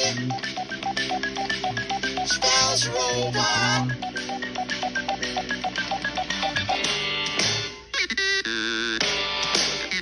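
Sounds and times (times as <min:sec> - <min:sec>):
electronic keyboard bleeping notes: 0:00.0 - 0:06.9.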